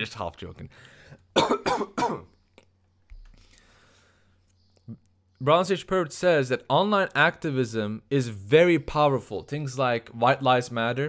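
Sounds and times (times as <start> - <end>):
man coughing: 1.3 - 2.3.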